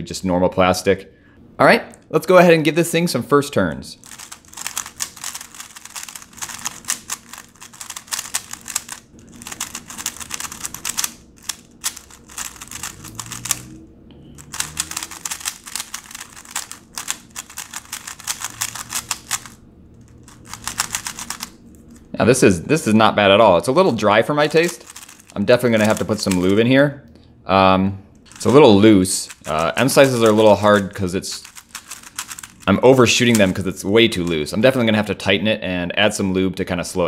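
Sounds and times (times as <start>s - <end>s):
plastic puzzle cube clicking: 4.0s - 13.7s, 14.4s - 19.6s, 20.2s - 21.5s, 24.6s - 26.5s, 29.3s - 32.6s.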